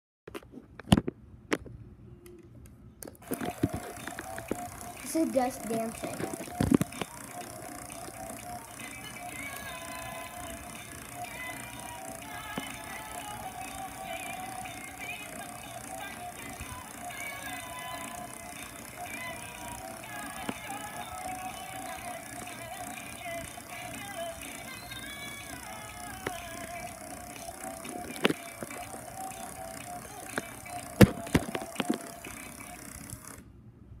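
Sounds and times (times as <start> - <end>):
toy playing tune: 3.2 - 33.4.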